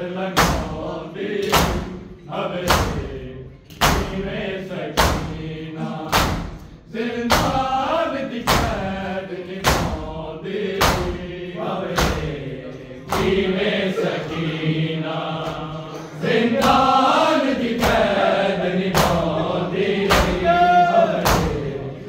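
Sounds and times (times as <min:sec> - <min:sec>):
men chanting a lament: 0:00.0 - 0:22.0
hands slapping chests: 0:01.4 - 0:02.0, 0:03.7 - 0:04.2, 0:06.1 - 0:07.6, 0:10.8 - 0:11.2, 0:11.9 - 0:12.4, 0:13.1 - 0:13.6, 0:16.6 - 0:18.3, 0:18.9 - 0:21.8.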